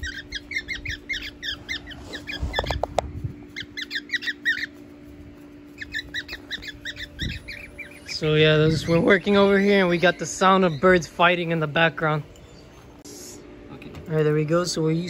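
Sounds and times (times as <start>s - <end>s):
parrots squawking: 0.0s - 4.8s, 5.7s - 11.5s.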